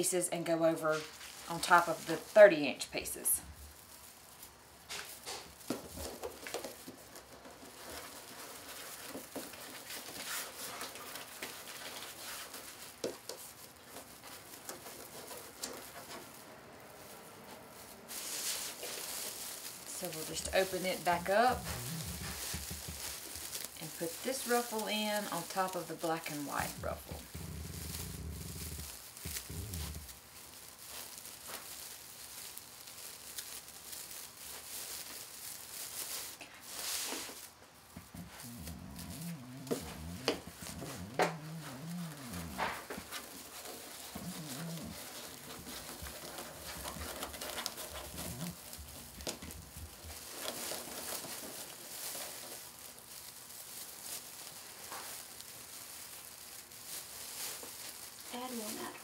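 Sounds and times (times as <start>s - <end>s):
metallic mesh crinkling: 0.7s - 59.0s.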